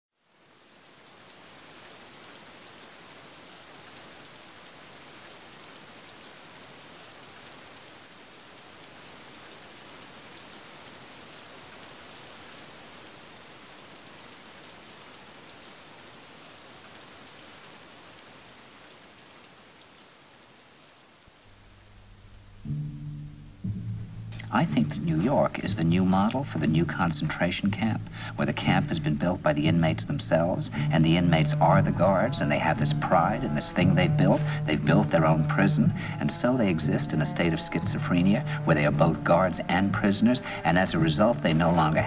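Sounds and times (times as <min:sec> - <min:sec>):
rain-like hiss: 0:00.1 - 0:42.0.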